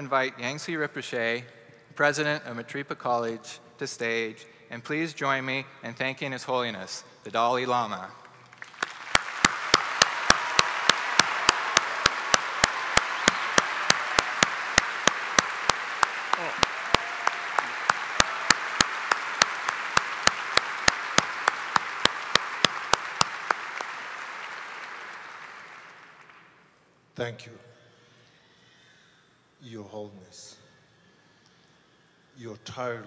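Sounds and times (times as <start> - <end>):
sharp close claps: 8.4 - 26.5
audience applauding: 8.4 - 26.6.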